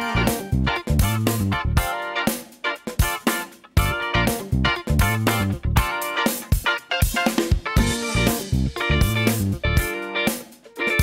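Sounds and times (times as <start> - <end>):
instrumental music with guitar: 0.0 - 11.0.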